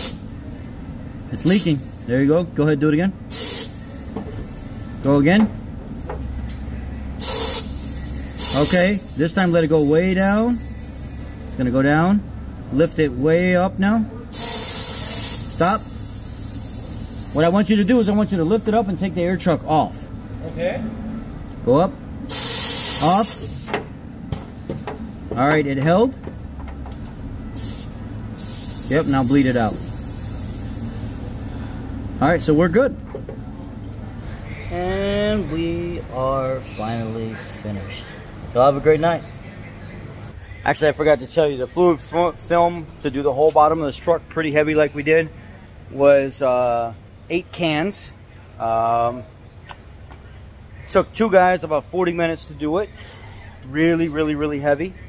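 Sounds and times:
compressed air hiss: 0.0s - 0.4s, 1.4s - 2.1s, 3.3s - 5.0s, 7.2s - 11.5s, 14.3s - 18.1s, 22.3s - 23.8s, 27.5s - 32.0s
steady low hum: 0.0s - 46.3s.

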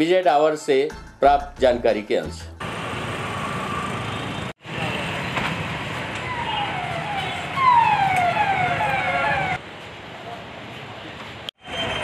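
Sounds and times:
street noise: 1.8s - 12.0s
police siren: 5.9s - 9.6s.

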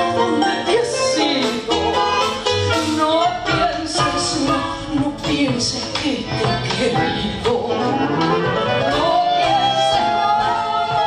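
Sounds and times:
double bass: 0.0s - 11.0s
woman singing: 0.0s - 11.0s.

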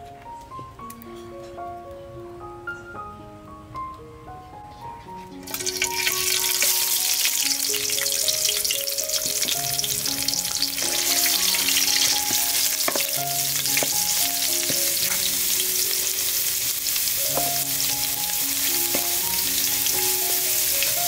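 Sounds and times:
soft background music: 0.0s - 21.0s
curry paste sizzling in oil: 5.4s - 21.0s
metal ladle stirring and scraping: 10.6s - 16.5s.

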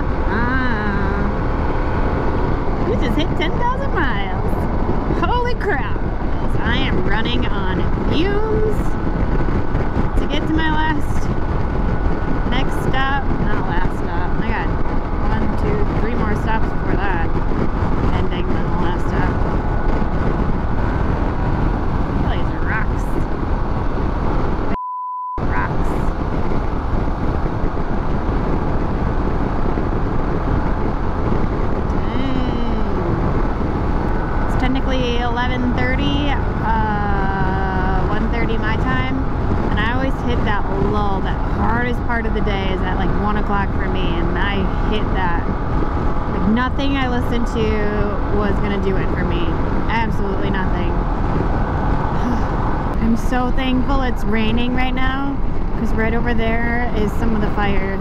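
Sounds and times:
motorcycle engine cruising: 0.0s - 24.8s
wind rush: 0.0s - 24.8s, 25.4s - 58.0s
censor bleep: 24.7s - 25.4s.

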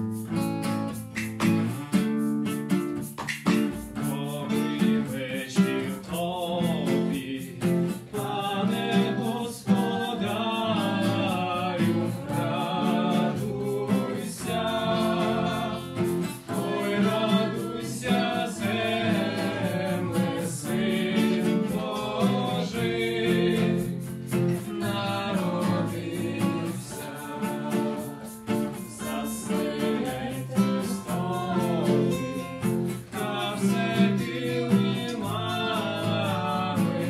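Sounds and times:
acoustic guitars strumming: 0.0s - 37.0s
men and women singing together: 4.0s - 37.0s.

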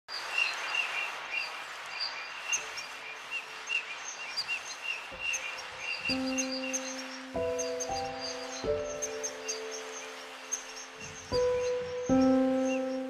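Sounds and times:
steady background hiss: 0.1s - 13.0s
high bird chirps: 2.4s - 13.0s
held music notes: 6.0s - 13.0s.

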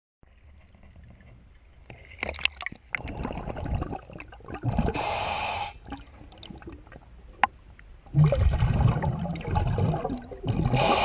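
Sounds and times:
rushing gurgling water burst: 8.1s - 11.0s.

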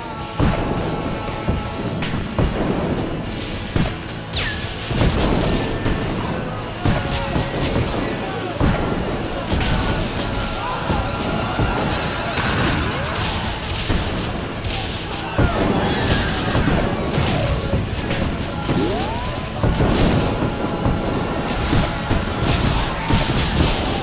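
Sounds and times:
battle music: 0.0s - 24.0s
crashes and booms: 0.3s - 24.0s.

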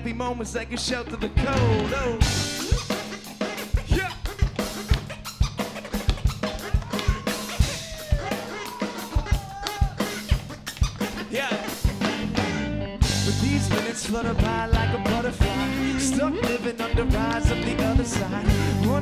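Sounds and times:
live band playing: 0.0s - 19.0s
drum kit beat: 1.2s - 19.0s.

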